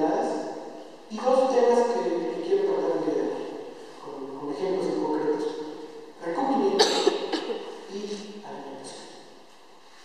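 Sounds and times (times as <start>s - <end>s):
speech: 0.0s - 5.6s, 6.2s - 9.2s
person coughing: 6.8s - 7.9s.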